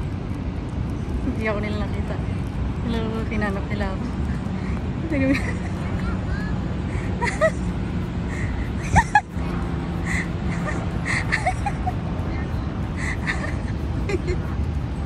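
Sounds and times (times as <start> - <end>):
distant voices of passers-by: 0.0 - 15.0
steady low rumble: 0.0 - 15.0.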